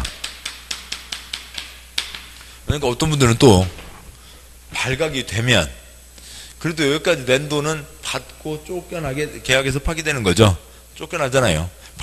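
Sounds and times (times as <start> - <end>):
chalk tapping and scraping on board: 0.0 - 2.3.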